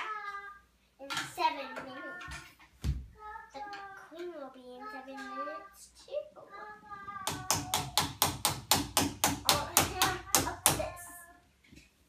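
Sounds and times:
child singing: 3.2s - 8.0s, 9.5s - 11.5s.

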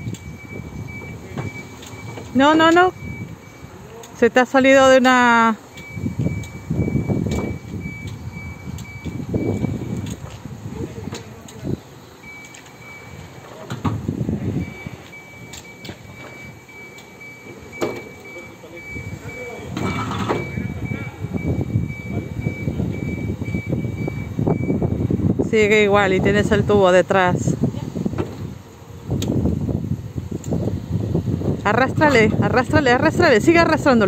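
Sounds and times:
rapid high-pitched warning beeps: 0.0s - 10.0s, 12.2s - 13.4s, 14.6s - 25.0s
low rumbling: 0.0s - 34.0s.

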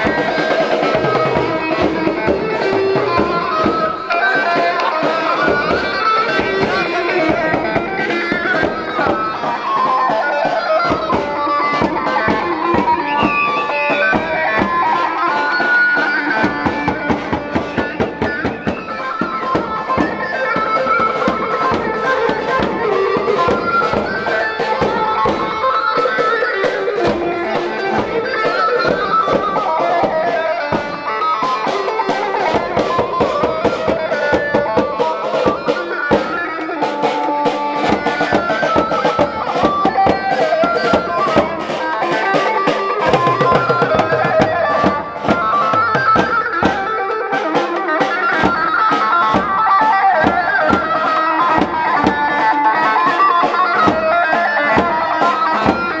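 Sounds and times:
drum kit beat: 0.0s - 56.0s
lead melody: 0.0s - 56.0s
live band dance music: 0.0s - 56.0s.

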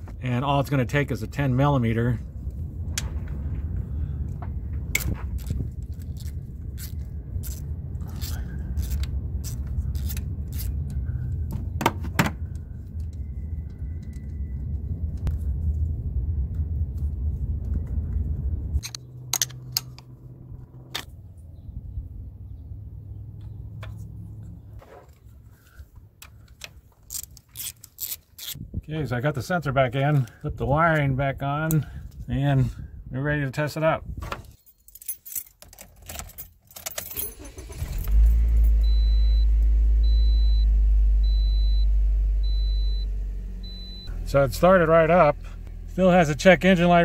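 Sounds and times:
steady low rumble: 0.0s - 24.8s, 38.0s - 47.0s.

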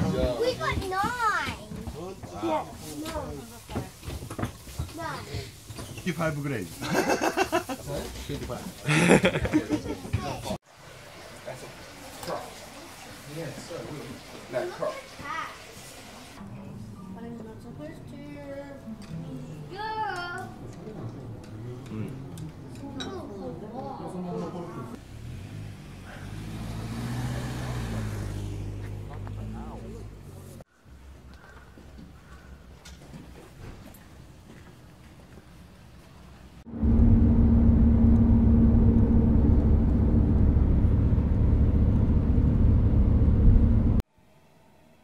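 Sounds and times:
engine and road rumble: 25.0s - 30.7s, 36.3s - 44.0s
steady hum: 36.7s - 44.0s.

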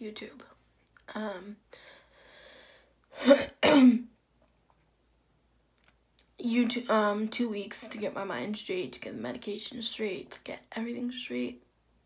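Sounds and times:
woman clearing her throat: 3.2s - 4.1s.

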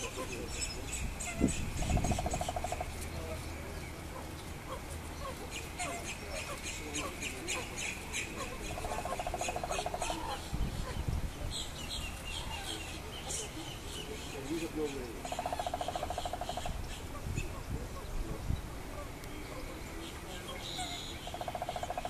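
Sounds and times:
birds chirping: 0.0s - 22.0s
faint voices: 0.0s - 22.0s
rattling bird trills: 15.2s - 16.8s, 20.7s - 22.0s.

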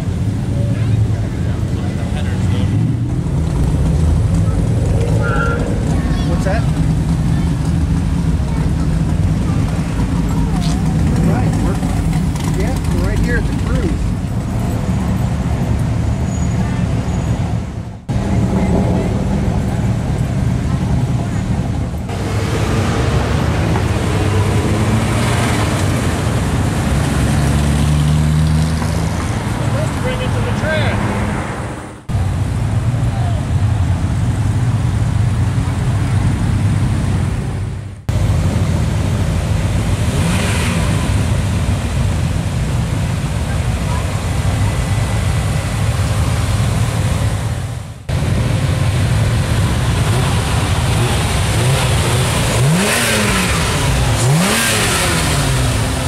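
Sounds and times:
road noise: 0.0s - 56.0s
slow car engines passing: 0.0s - 56.0s.

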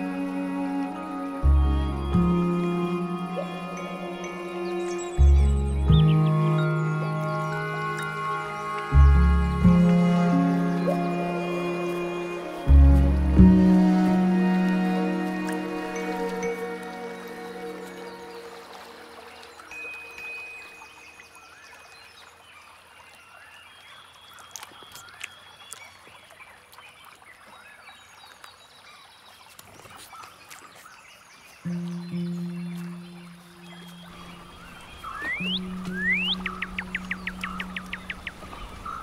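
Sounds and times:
music tones: 0.0s - 20.7s, 31.7s - 38.2s
low sustained musical note: 0.0s - 21.5s, 31.7s - 39.0s
trickling spring water: 0.0s - 39.0s.

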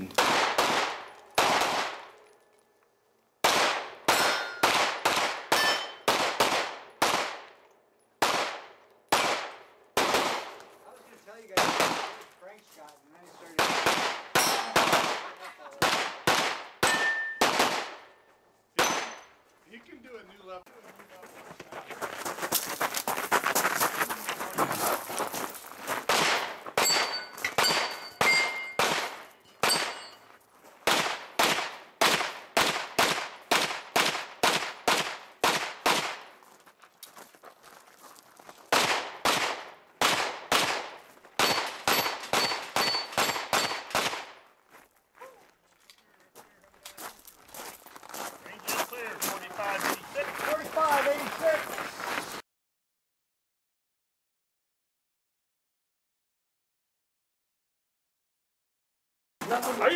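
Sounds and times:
carbine gunshots: 0.1s - 2.1s, 3.4s - 7.5s, 8.2s - 10.6s, 11.5s - 12.3s, 13.6s - 18.1s, 18.8s - 19.2s, 26.1s - 30.2s, 30.8s - 36.3s, 38.7s - 44.4s
steel targets ringing: 4.1s - 4.7s, 5.6s - 6.1s, 14.4s - 14.8s, 16.8s - 17.4s, 26.8s - 28.9s, 29.5s - 30.3s, 41.4s - 43.9s.

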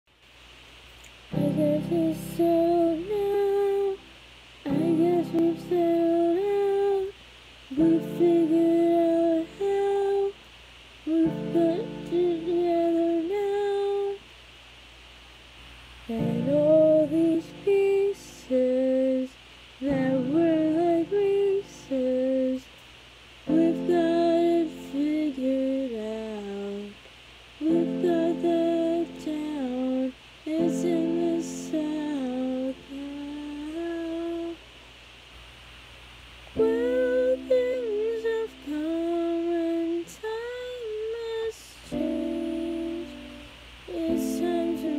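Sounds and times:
faint room hiss: 0.0s - 44.9s
woman humming a melody: 1.3s - 4.1s, 4.7s - 10.4s, 11.1s - 14.2s, 16.1s - 22.7s, 23.5s - 27.0s, 27.6s - 34.6s, 36.6s - 44.9s
woman singing: 1.3s - 4.1s, 4.7s - 10.4s, 11.0s - 14.3s, 16.1s - 22.7s, 23.4s - 27.0s, 27.6s - 34.6s, 36.6s - 44.9s.

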